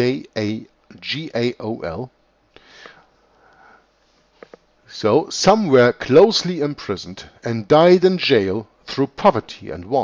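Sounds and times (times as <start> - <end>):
soft breath through the nose: 2.6 - 4.5.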